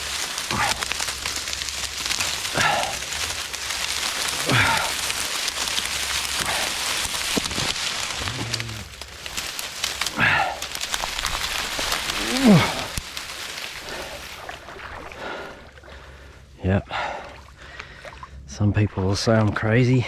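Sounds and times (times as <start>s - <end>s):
dry reeds crackling and rustling: 0.0s - 16.6s.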